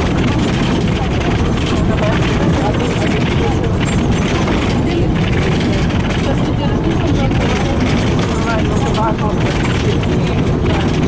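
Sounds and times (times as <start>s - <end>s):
bus engine running: 0.0s - 11.0s
tyre and road noise: 0.0s - 11.0s.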